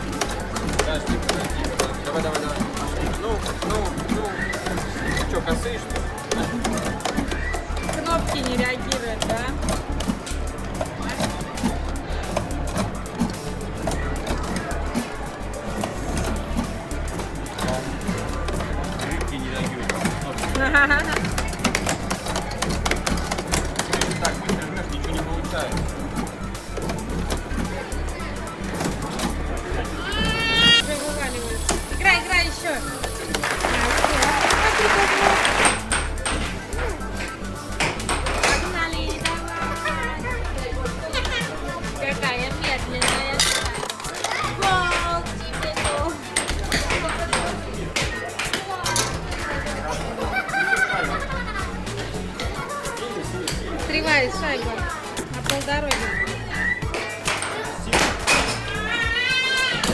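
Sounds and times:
arcade buttons clicking: 0:00.0 - 0:30.0
arcade music: 0:00.0 - 0:59.9
air hockey puck clacks: 0:17.6 - 0:25.9, 0:56.9 - 0:58.6
children's voices: 0:43.7 - 0:46.2, 0:48.0 - 0:53.6, 0:55.9 - 0:59.9.

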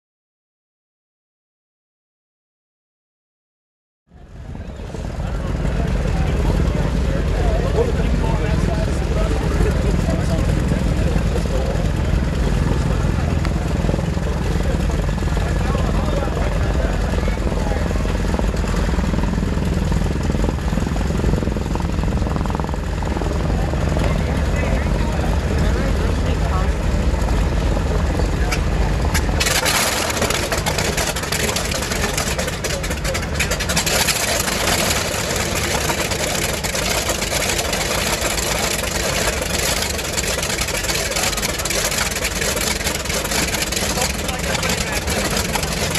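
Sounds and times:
large engine rumbling: 0:04.1 - 0:45.9.

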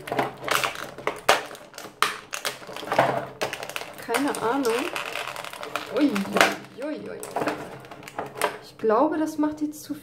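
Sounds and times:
plastic packaging crackling: 0:00.0 - 0:08.8
plastic rustling: 0:00.0 - 0:08.8.

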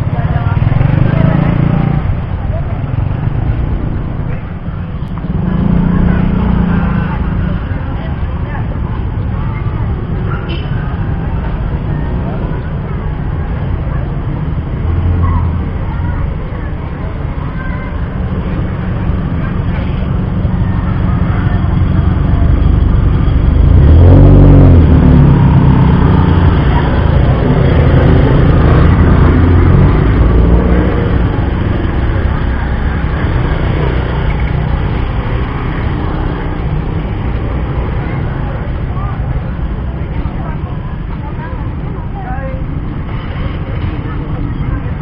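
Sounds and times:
vehicle passing close: 0:00.0 - 0:08.0, 0:19.0 - 0:40.8
motorbikes and cars idling: 0:00.0 - 0:45.0
people talking: 0:00.0 - 0:45.0.

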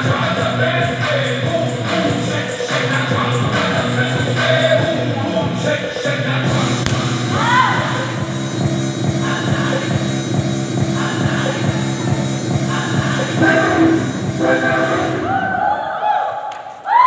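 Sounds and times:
dance workout music: 0:00.0 - 0:15.7.

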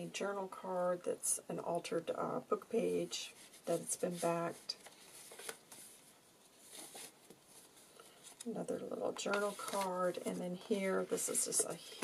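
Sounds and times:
paper pages being turned: 0:03.5 - 0:08.5, 0:09.2 - 0:12.0.

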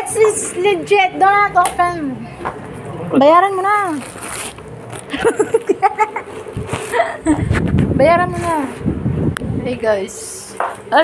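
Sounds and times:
plastic pouch ripping: 0:03.8 - 0:05.2
plastic crinkling: 0:03.8 - 0:05.7.

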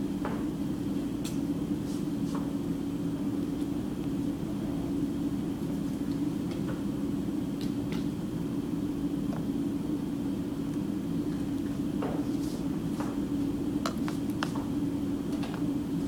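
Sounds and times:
steady low machine hum: 0:00.0 - 0:16.0.

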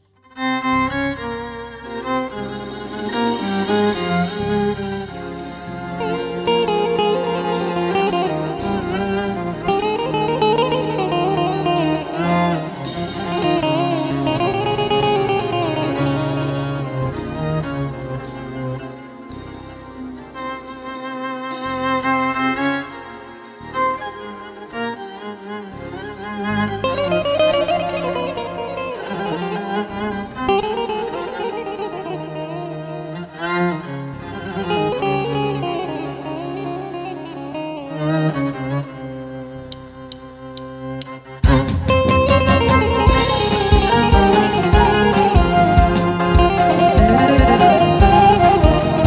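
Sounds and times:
bowed string melody: 0:00.0 - 0:49.0
live folk band playing: 0:00.4 - 0:49.0
plucked string notes: 0:00.6 - 0:49.0
sustained low accompaniment: 0:00.6 - 0:49.0
accented band hits: 0:02.3 - 0:21.9, 0:41.4 - 0:49.0.

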